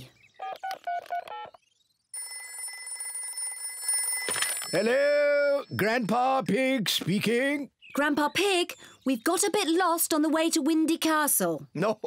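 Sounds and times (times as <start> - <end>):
telephone bell ringing: 2.2 - 5.7.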